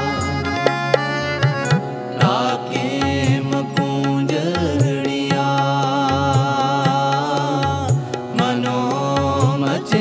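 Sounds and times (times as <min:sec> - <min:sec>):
harmonium chords: 0:00.0 - 0:10.0
person singing: 0:00.0 - 0:10.0
tabla strokes: 0:00.0 - 0:10.0.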